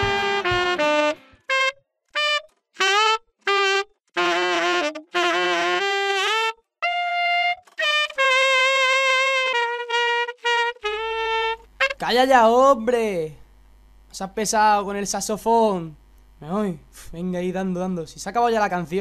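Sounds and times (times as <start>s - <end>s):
solo saxophone: 0.0s - 12.5s.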